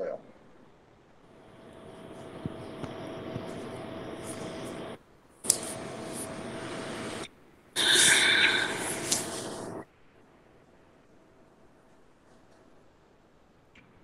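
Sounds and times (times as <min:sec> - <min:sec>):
faint steady hum: 0:00.1 - 0:14.0
steady rushing noise: 0:01.3 - 0:09.8.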